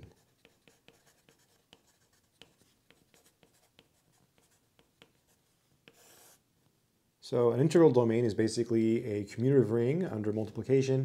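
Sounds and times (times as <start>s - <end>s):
pencil writing on paper: 0.0s - 6.4s.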